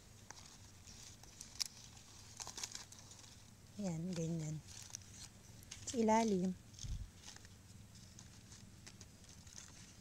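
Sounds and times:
palm leaf strips ticking: 0.2 - 10.0.

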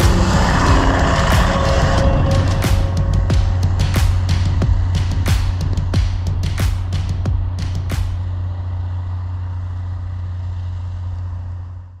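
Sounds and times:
snowcat engine droning: 0.0 - 12.0.

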